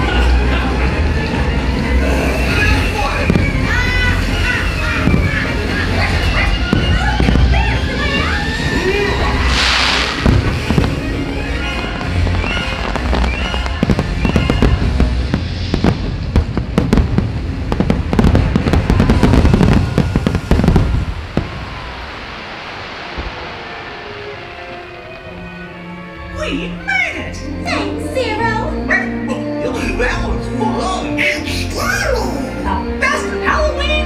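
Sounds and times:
loud show music: 0.0s - 16.9s
fireworks cracking and booming: 0.0s - 26.1s.

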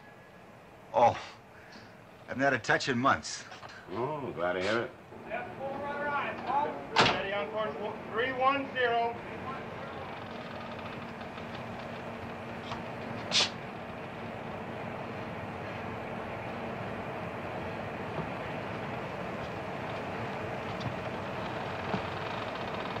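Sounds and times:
faint hum tones: 0.0s - 23.0s
ship machinery drone: 4.0s - 23.0s.

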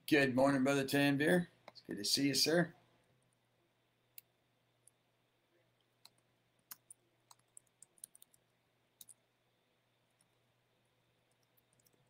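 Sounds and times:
faint low hum: 0.0s - 12.0s
computer clicking: 5.9s - 9.2s, 11.3s - 12.0s.

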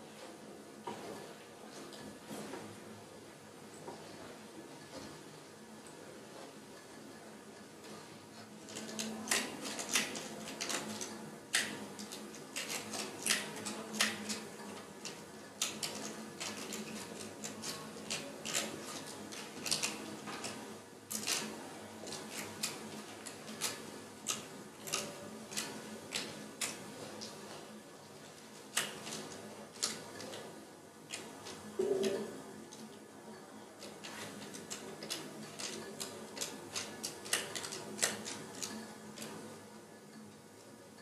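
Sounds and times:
irregular clicks and crackles: 7.8s - 33.1s, 33.8s - 41.0s.

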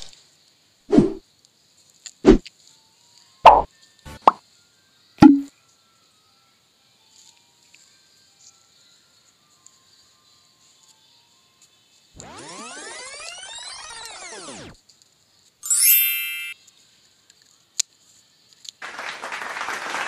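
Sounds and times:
shimmering sweeping tones: 12.2s - 14.8s.

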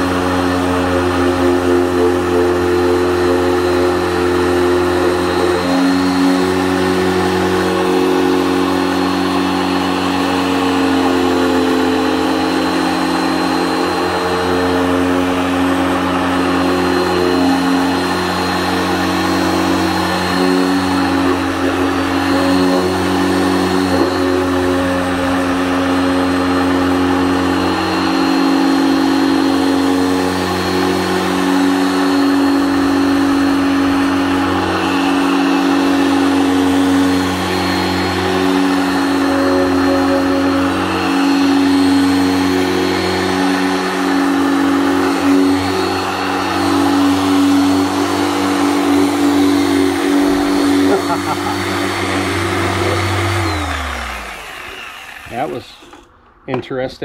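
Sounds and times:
polisher motor hum: 0.0s - 56.4s.

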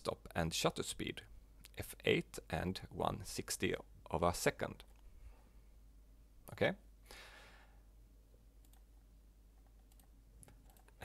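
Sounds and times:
faint breath: 7.0s - 7.9s
computer mouse clicks: 8.6s - 8.9s, 9.6s - 11.0s.

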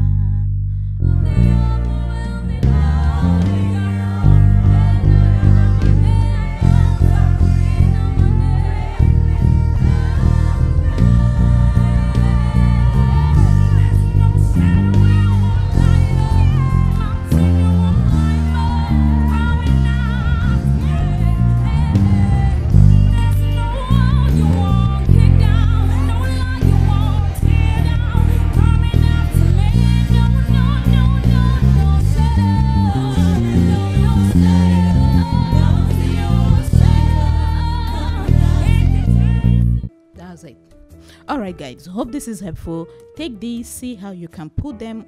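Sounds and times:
electric bass low notes: 0.0s - 39.9s
gospel singer and choir: 1.1s - 39.9s.

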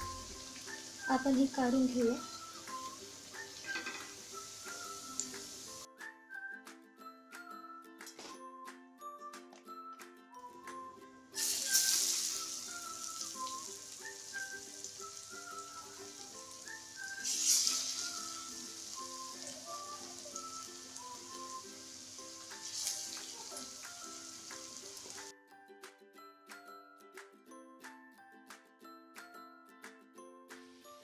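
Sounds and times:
food sizzling in hot oil: 0.0s - 5.9s, 11.4s - 25.3s.

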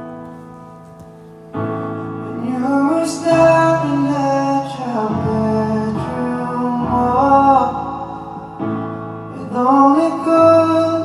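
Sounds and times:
man singing slow melody: 2.2s - 11.0s.

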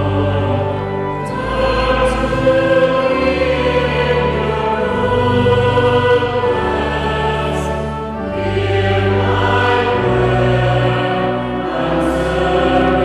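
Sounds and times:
church choir singing: 0.0s - 13.0s.

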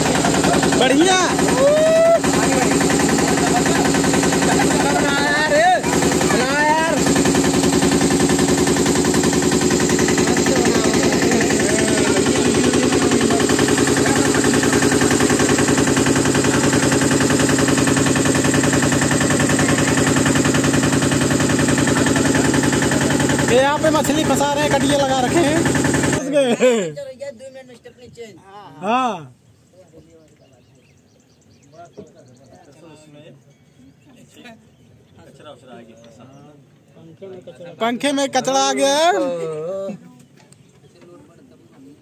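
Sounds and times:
motorboat engine chugging: 0.0s - 26.5s
voices: 0.0s - 42.0s.

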